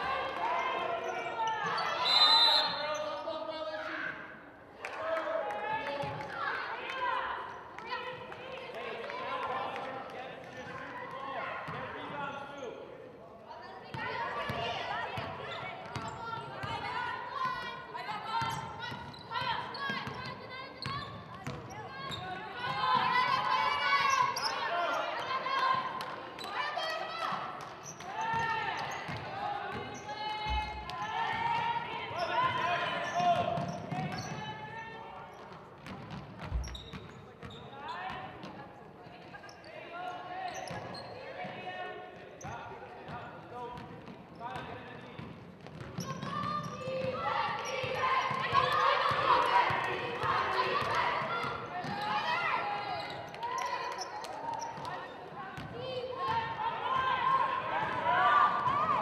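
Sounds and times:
people shouting in gymnasium: 0.0 - 12.8, 13.5 - 45.0, 45.7 - 59.0.

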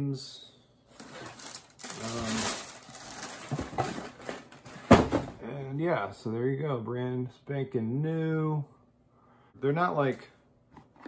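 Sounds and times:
paper and cardboard rustling: 1.0 - 5.3.

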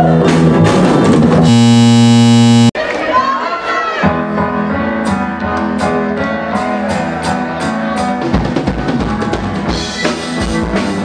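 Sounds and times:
loud steady electric buzz: 1.4 - 2.8.

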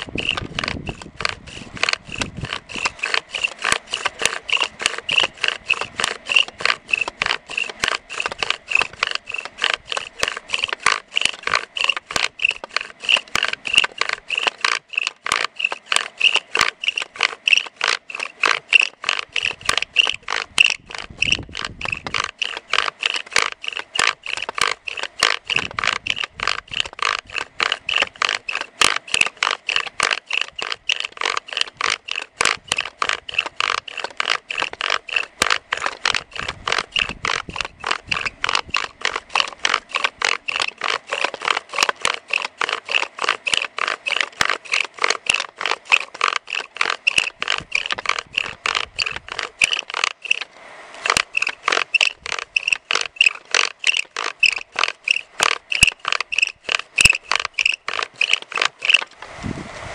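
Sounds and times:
bow drill rhythmic scraping: 0.0 - 59.8.

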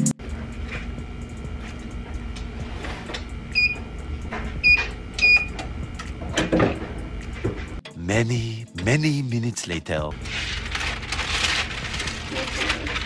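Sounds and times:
steady low hum: 0.0 - 8.8, 10.1 - 13.0
electronic timer beeping: 3.5 - 3.9, 4.6 - 5.6.

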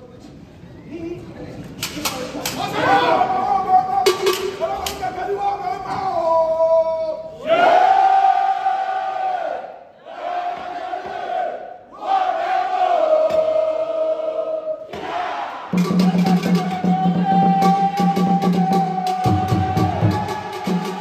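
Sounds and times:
music with steady beat: 15.8 - 21.0.

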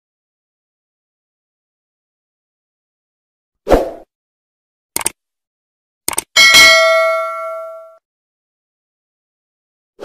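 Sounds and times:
double mouse click: 5.0 - 5.2, 6.1 - 6.3
bright bell ding: 6.4 - 8.0.

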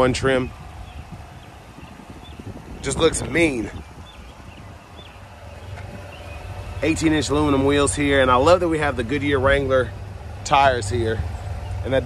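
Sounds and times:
man talking: 0.0 - 0.5, 2.8 - 3.8, 6.8 - 12.0
low steady rumble: 0.0 - 12.0.

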